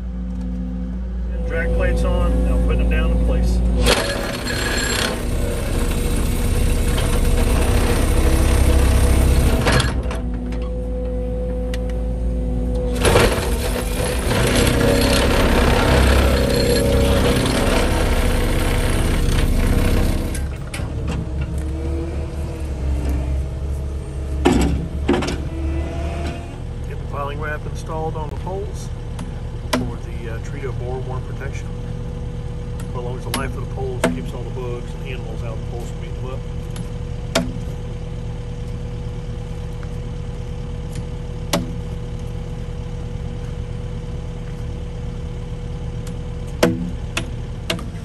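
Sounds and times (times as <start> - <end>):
diesel engine running: 0.0 - 48.0
vibratory hammer driving post: 3.7 - 10.5, 12.9 - 21.4.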